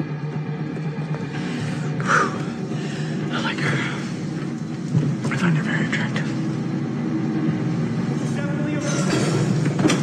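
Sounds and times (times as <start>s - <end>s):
faint held drone: 0.0s - 10.0s
steady low hum: 0.0s - 10.0s.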